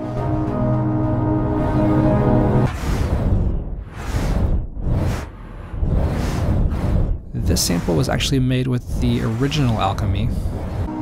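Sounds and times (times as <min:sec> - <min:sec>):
noisy whooshing synth swells: 0:01.5 - 0:11.0.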